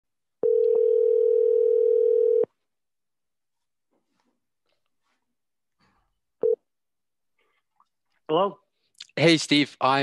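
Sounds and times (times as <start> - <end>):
telephone ringback tone: 0.4 - 2.5.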